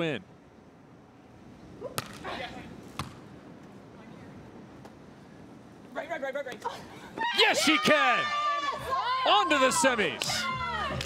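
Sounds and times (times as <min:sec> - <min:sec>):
volleyball struck by hand: 0:03.0 - 0:03.2.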